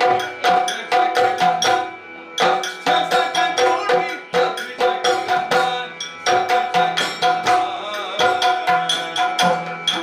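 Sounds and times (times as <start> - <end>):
hand and stick drumming: 0.0 - 10.0.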